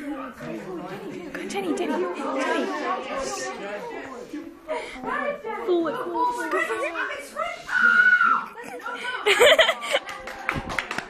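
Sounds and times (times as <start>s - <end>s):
teenagers chattering: 0.0s - 11.0s.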